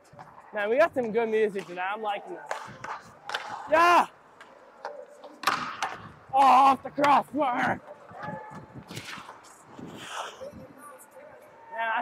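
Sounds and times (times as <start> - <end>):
sharp click of stick or puck: 2.5 - 3.6, 8.9 - 9.4
skate blades scraping ice: 8.8 - 10.7.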